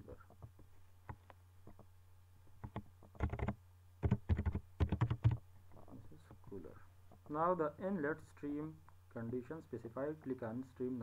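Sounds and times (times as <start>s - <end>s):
typing on computer keyboard: 2.6s - 5.4s.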